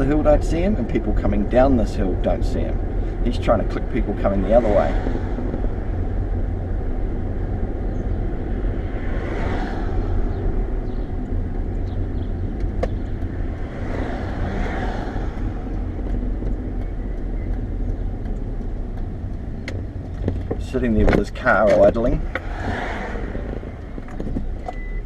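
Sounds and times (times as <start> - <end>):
car engine and tyre noise: 0.0 - 25.0
vehicles passing: 0.0 - 25.0.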